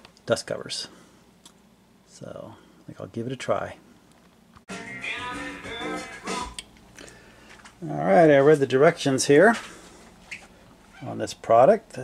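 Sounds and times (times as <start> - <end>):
background music: 4.7 - 6.7.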